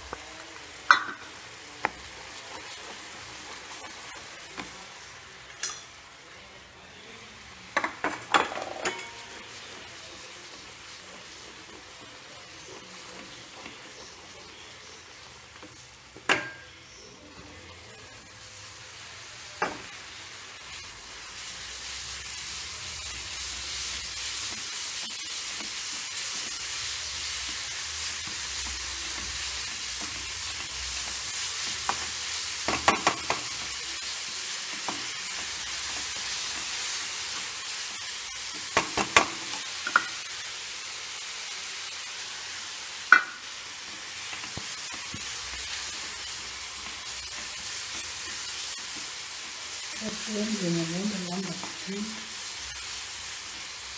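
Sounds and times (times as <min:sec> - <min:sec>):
food sizzling in a pan: 0:00.0 - 0:53.9.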